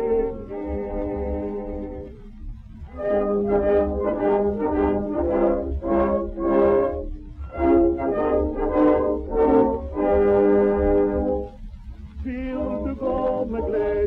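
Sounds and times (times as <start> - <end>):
record surface rumble: 0.0 - 14.0
small orchestra with brass: 0.0 - 14.0.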